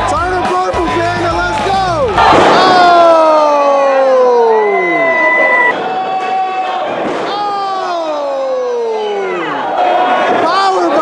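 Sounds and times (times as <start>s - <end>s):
music with bass beat: 0.0s - 2.2s
crowd shouting: 0.0s - 11.0s.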